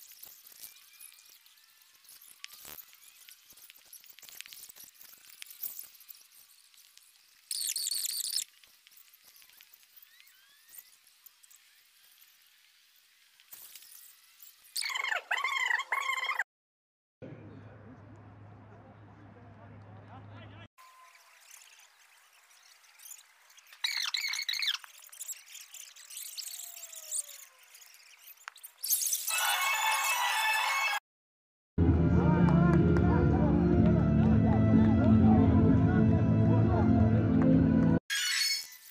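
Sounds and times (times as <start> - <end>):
high-pitched squeaky tones: 7.5 - 11.7, 14.8 - 16.4, 20.8 - 30.7, 38.1 - 38.9.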